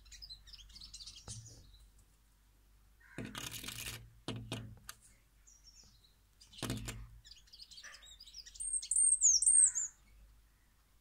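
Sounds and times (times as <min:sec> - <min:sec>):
small bird chirping: 0:00.0 - 0:02.0, 0:05.0 - 0:10.7
rustling knocks: 0:03.1 - 0:04.9, 0:06.6 - 0:07.1.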